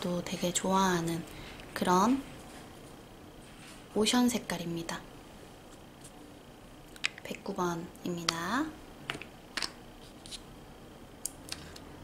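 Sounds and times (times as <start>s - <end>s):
small jars clicking on tabletop: 6.9s - 7.4s, 9.1s - 9.8s.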